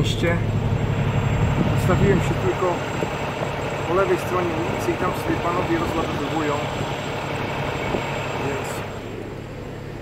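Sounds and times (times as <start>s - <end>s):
diesel truck engine idling: 0.0s - 10.0s
street noise: 0.0s - 10.0s.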